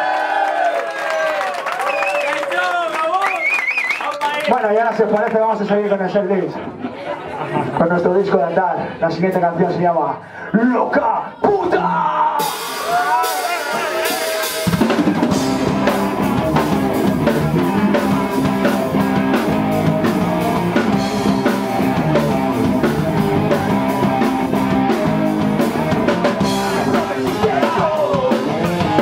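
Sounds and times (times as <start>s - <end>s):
drum kit: 12.3s - 29.0s
bass guitar: 12.9s - 29.0s
electric guitar: 13.6s - 29.0s.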